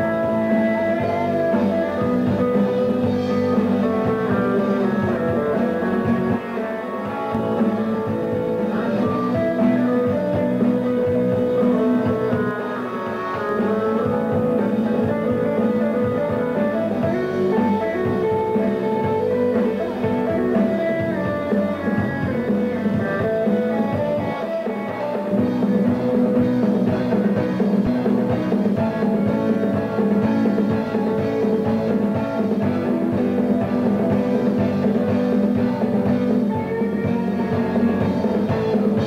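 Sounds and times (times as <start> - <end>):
bass guitar: 0.0 - 39.0
drum kit: 0.0 - 39.0
electric guitar: 0.0 - 39.0.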